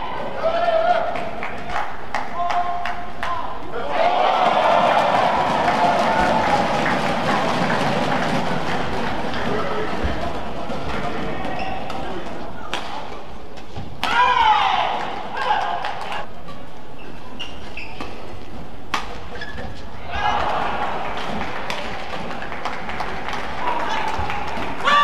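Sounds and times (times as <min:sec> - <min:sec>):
crowd cheering and chattering: 0:00.0 - 0:02.4, 0:03.5 - 0:13.6, 0:14.8 - 0:25.0
racket hitting shuttlecock: 0:11.9 - 0:14.5, 0:18.8 - 0:19.8.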